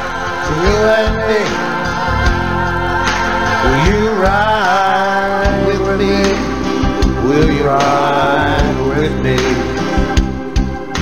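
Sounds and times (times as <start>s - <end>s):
man singing: 0.0s - 1.9s, 3.6s - 10.3s
band playing worship song: 0.0s - 11.0s.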